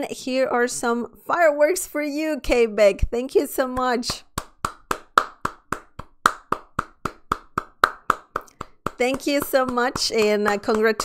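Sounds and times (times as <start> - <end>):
person clapping hands: 3.8 - 11.0.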